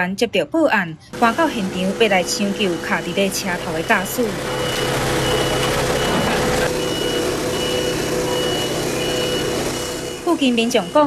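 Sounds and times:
engine humming: 1.1s - 11.0s
high electronic beeps: 2.4s - 11.0s.

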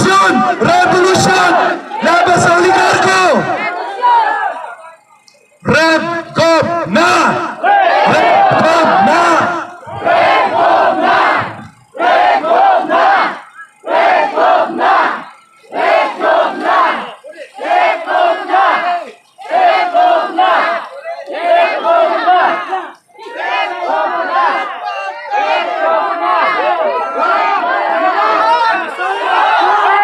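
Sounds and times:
crowd chanting slogan: 0.0s - 30.0s.

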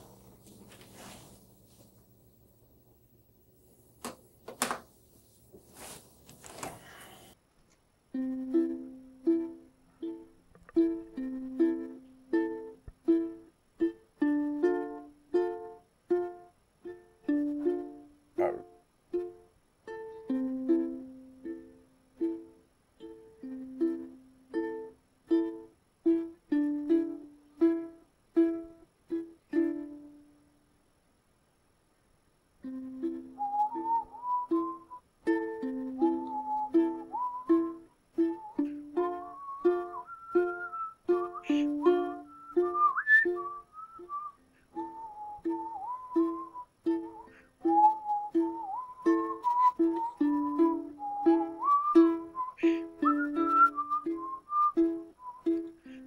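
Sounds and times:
plucked string instrument music: 8.1s - 30.4s, 32.6s - 43.6s, 44.7s - 56.0s.

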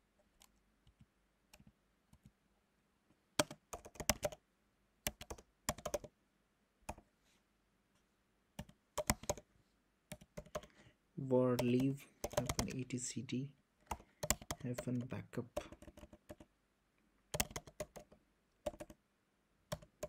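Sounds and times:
typing on computer keyboard: 3.4s - 4.4s, 5.1s - 6.1s, 8.6s - 9.4s, 10.1s - 10.7s, 11.5s - 12.8s, 13.8s - 16.5s, 17.3s - 19.0s, 19.7s - 20.0s.

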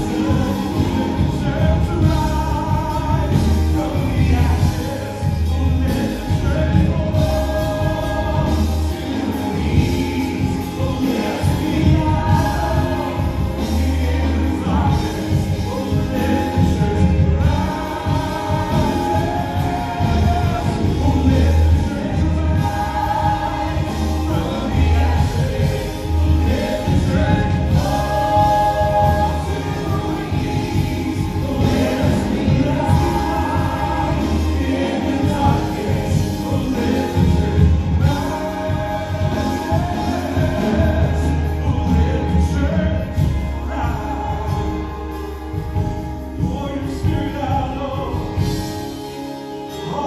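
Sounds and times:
pulsing bass: 0.0s - 49.3s
voices singing together: 0.0s - 50.0s
worship band playing: 0.0s - 50.0s.

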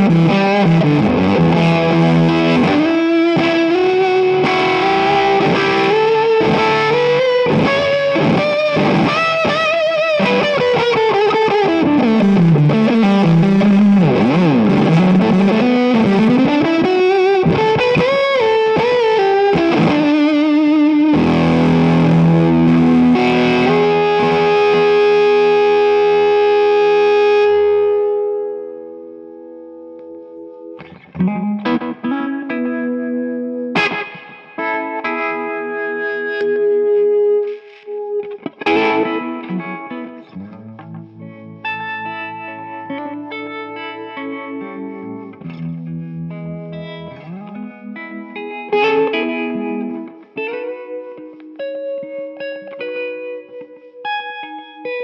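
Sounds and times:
fuzz distorted electric guitar: 0.0s - 55.0s.

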